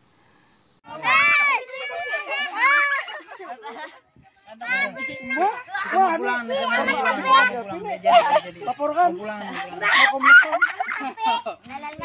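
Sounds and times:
children calling out and chattering: 0.9 - 12.0.

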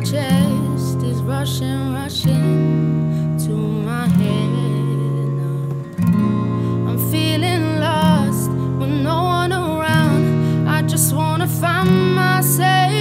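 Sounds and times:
woman singing softly: 0.0 - 2.7, 3.4 - 6.0, 6.9 - 13.0
acoustic guitar chords: 0.0 - 13.0.

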